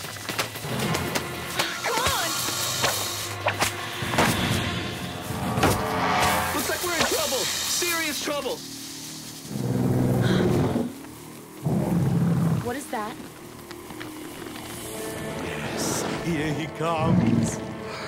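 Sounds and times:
background score: 0.6 - 18.0
sharp hits: 1.6 - 8.0.

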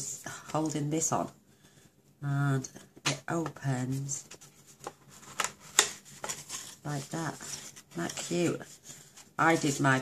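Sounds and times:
paper crackling and rustling: 3.5 - 10.0.

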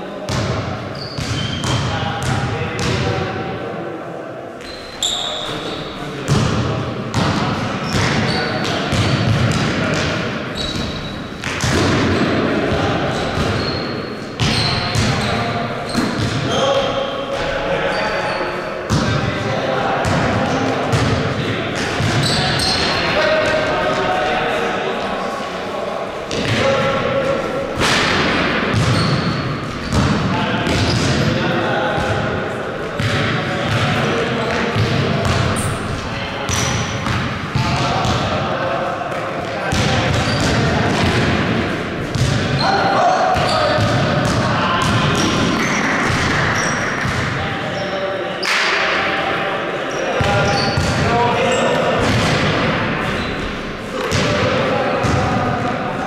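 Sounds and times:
players' voices: 0.0 - 56.0
sneaker squeaks: 0.3 - 2.3, 4.6 - 6.1, 7.2 - 12.3, 13.1 - 19.0, 21.8 - 23.4, 28.7 - 31.2, 34.7 - 37.2, 39.8 - 40.6, 42.1 - 48.7, 49.9 - 51.8, 53.0 - 54.2
basketball bouncing: 6.3 - 12.3, 27.8 - 31.2, 42.1 - 42.5, 55.0 - 55.3.

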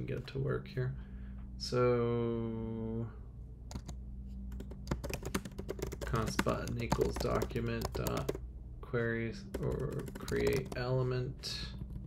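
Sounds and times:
keyboard keystrokes: 3.7 - 8.4, 9.5 - 10.8.

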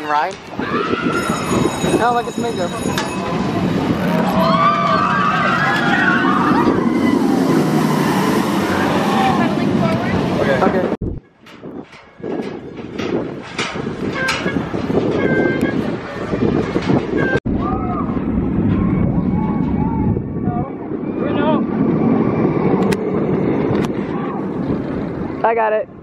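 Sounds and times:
roller coaster train rumbling on track: 0.0 - 26.0.

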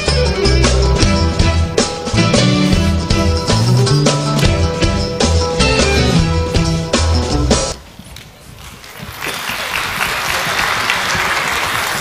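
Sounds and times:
audience applause: 8.8 - 12.0.

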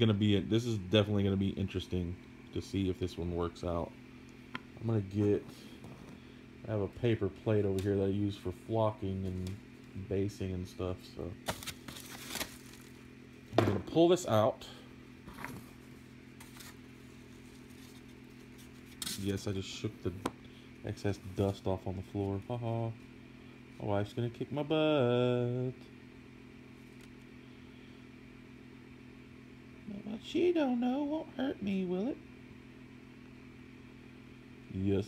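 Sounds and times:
faint machine hum: 0.0 - 35.0
person speaking: 4.6 - 5.8, 6.6 - 11.6, 19.0 - 23.0.

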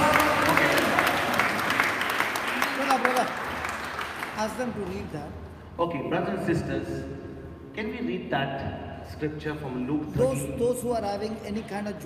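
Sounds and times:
congregation clapping: 0.0 - 5.3.

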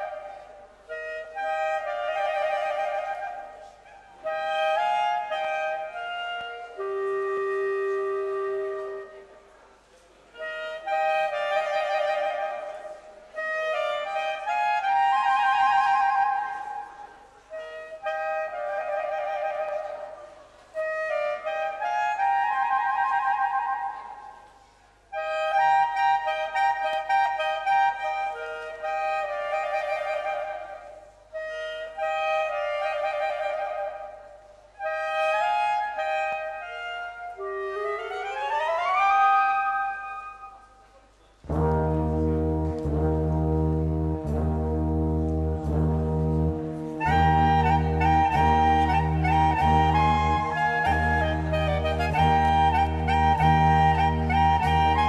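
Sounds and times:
clarinet duet playing polka: 0.0 - 24.4, 25.0 - 55.0.

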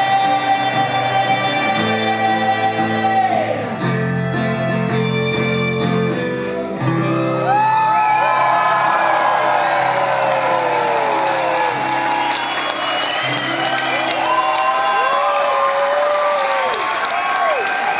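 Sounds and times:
audience cheering and screaming: 7.4 - 17.9.

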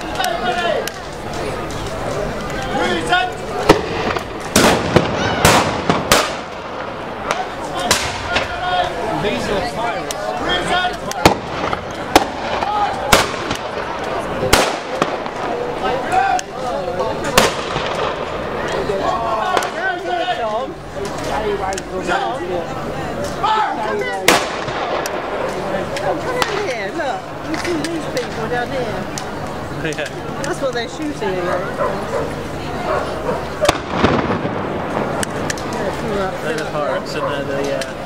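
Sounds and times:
voices: 0.0 - 38.0
muskets firing: 3.6 - 8.6, 11.0 - 15.9, 17.2 - 19.8, 24.2 - 25.6, 33.6 - 35.9.

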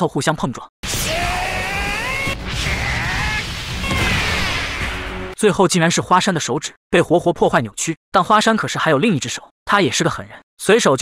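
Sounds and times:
anime soundtrack music: 0.8 - 5.4.

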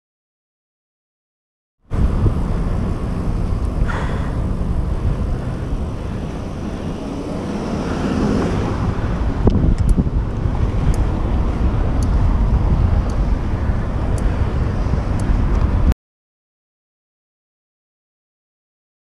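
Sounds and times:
bicycle road rumble: 1.8 - 16.0
wind buffeting microphone: 1.9 - 16.0.

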